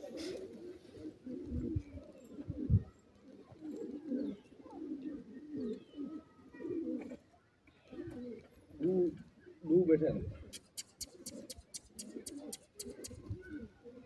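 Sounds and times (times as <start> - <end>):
bird cooing: 0.0 - 9.6, 10.3 - 14.0.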